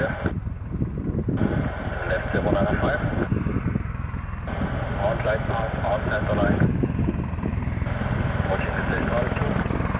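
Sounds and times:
radio hiss: 0.0s - 0.4s, 1.5s - 3.3s, 8.4s - 9.6s
wind on microphone: 0.0s - 9.9s.

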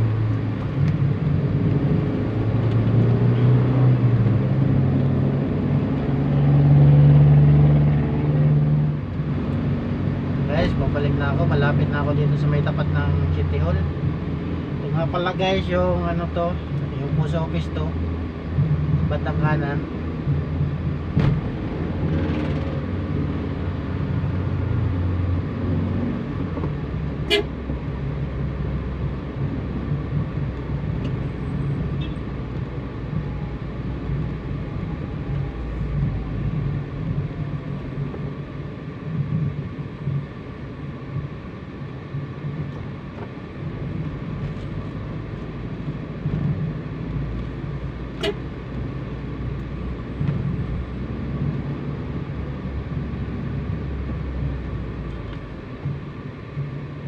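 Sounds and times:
vehicle engine and road noise: 0.0s - 57.0s.

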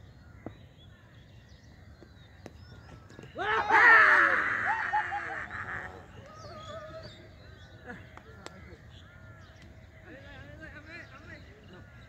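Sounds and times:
faint crows cawing: 0.0s - 12.0s
distant voices of players: 0.4s - 12.0s.

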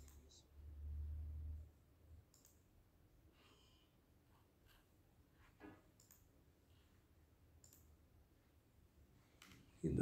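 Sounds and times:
soft clicks: 0.0s - 0.4s, 2.3s - 2.7s, 5.9s - 6.3s, 7.6s - 8.0s.

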